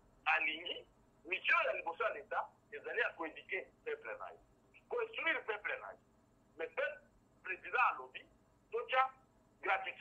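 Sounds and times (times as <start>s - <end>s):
man talking on telephone: 0.3s - 6.0s, 6.6s - 10.0s.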